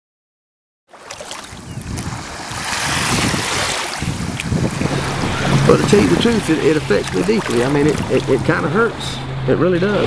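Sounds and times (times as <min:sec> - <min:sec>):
small waves washing over sand: 0:00.9 - 0:08.6
wind rumbling on microphone: 0:01.5 - 0:09.6.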